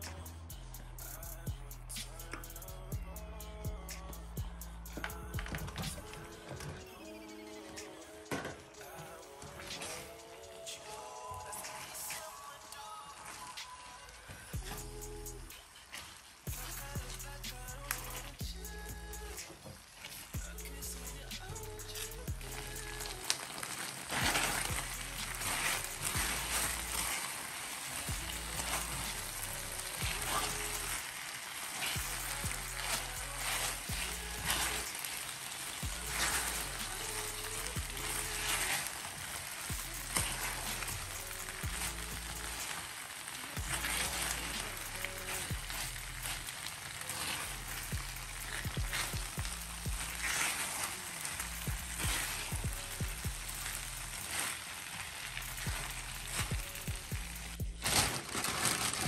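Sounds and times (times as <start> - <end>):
background music with bass line: 0.0 - 13.6, 14.5 - 15.8, 16.5 - 19.6, 20.2 - 23.4, 24.1 - 27.2, 28.0 - 31.1, 31.9 - 35.0, 35.8 - 38.9, 39.6 - 42.7, 43.6 - 50.8, 51.4 - 54.5, 55.2 - 58.1
chicken wings sizzling in skillet: 7.0 - 57.6.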